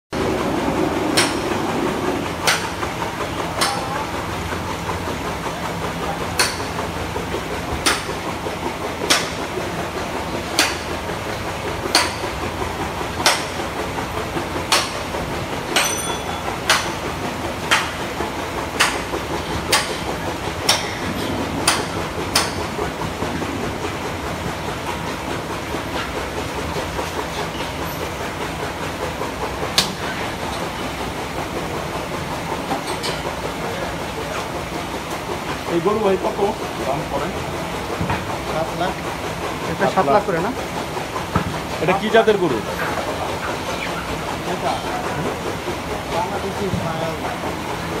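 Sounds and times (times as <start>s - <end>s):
cattle shed ambience: 0.2s - 48.0s.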